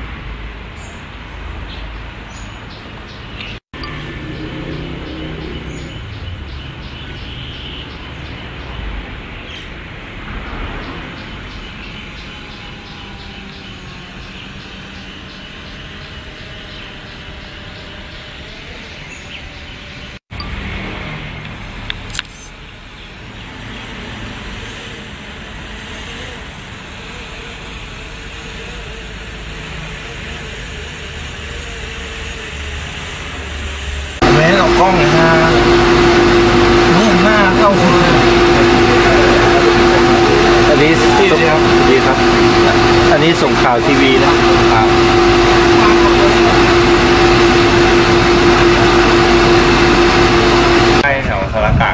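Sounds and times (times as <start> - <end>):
loud machine drone: 3.6 - 51.9
people talking: 34.2 - 51.9.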